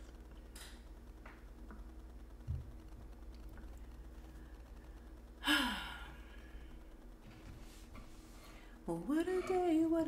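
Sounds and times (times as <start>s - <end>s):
woman sighing: 5.4s - 6.4s.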